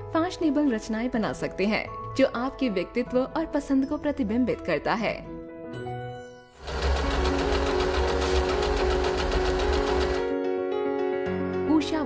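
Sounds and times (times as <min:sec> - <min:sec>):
background music: 0:00.0 - 0:12.0
sewing machine stitching: 0:06.6 - 0:10.3.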